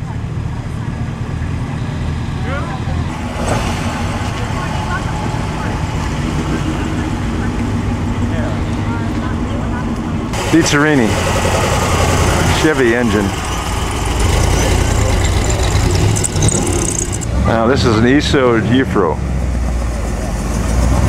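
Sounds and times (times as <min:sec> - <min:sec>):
people talking: 0:02.4 - 0:11.2, 0:12.2 - 0:19.2
car engine running slowly: 0:03.2 - 0:17.4.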